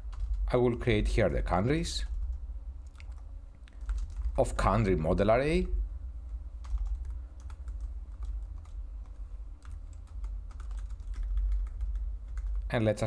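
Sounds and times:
steady low hum: 0.0s - 13.0s
keyboard typing clicks: 6.6s - 12.7s.

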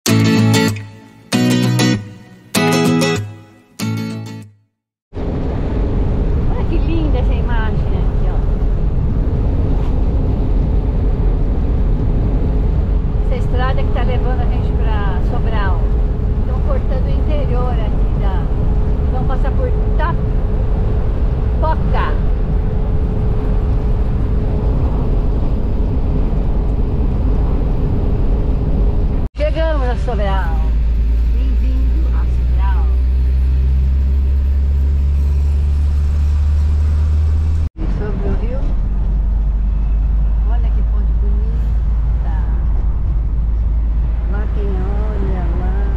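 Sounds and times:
van engine and road rumble: 5.1s - 45.9s.

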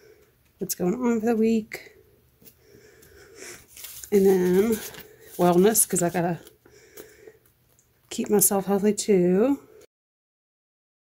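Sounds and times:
quiet breath-like sound: 1.8s - 4.0s, 6.5s - 7.5s.

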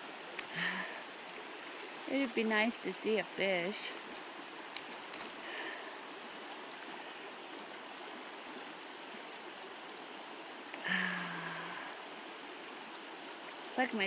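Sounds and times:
river rushing over riffle: 0.0s - 14.0s.

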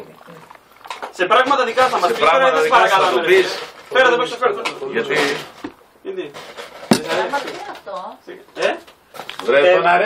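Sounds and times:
men talking: 1.1s - 7.6s
tableware clink: 6.9s - 7.4s.

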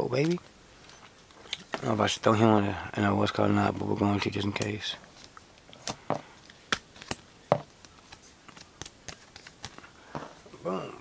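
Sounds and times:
cards and plastic holders clicking: 4.5s - 9.9s.

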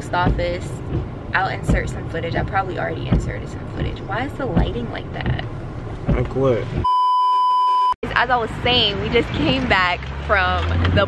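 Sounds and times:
censor bleep tone: 6.8s - 8.0s.

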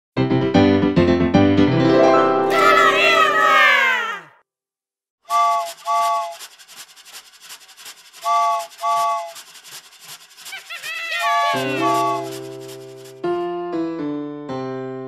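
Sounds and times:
train whistle toots: 5.3s - 6.4s, 8.2s - 9.4s, 11.1s - 12.3s
cartoon steam train chugging: 5.3s - 13.4s.

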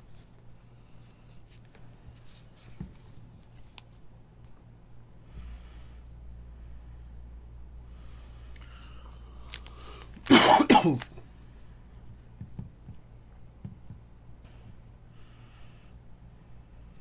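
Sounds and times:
person coughing: 10.2s - 11.2s.

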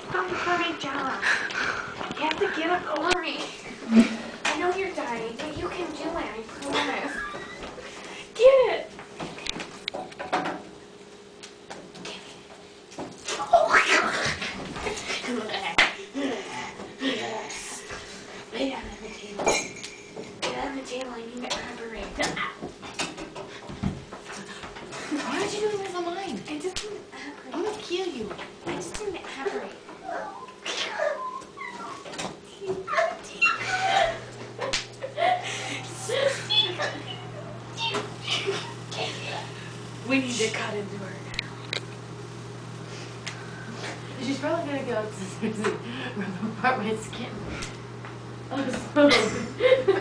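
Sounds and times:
steady low hum: 0.0s - 50.0s
high wavering vocal cry: 30.0s - 32.0s.

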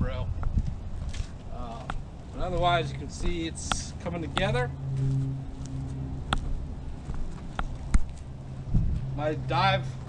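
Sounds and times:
steady low hum: 0.0s - 10.0s
sharp clicks and taps: 3.2s - 4.6s.

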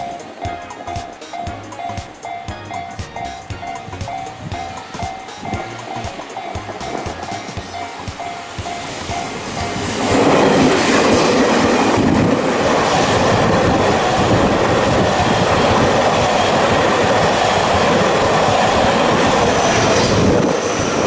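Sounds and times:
freight train passing: 0.0s - 21.0s.

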